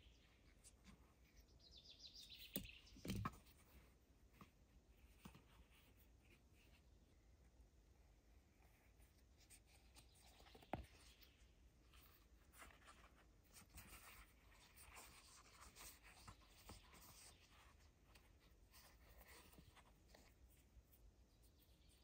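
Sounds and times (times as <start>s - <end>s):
thread rustling through leather: 8.4s - 22.0s.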